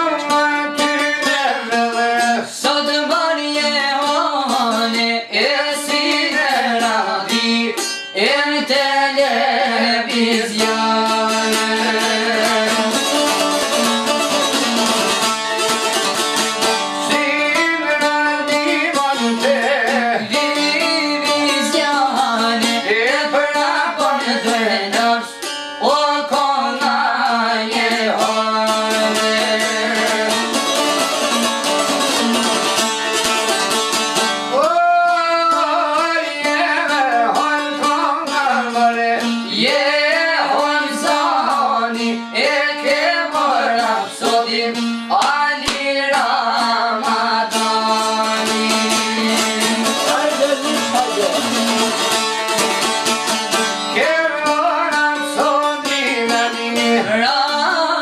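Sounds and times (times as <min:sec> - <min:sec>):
man singing folk song: 0:00.0 - 0:58.0
lutes strummed over a drone: 0:09.2 - 0:58.0.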